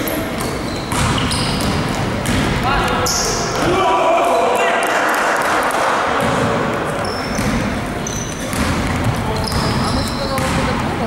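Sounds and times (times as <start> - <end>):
shoe squeak: 0.0 - 2.0, 7.0 - 10.7
basketball bouncing on court: 0.2 - 2.7, 6.2 - 11.0
players shouting: 2.6 - 7.1.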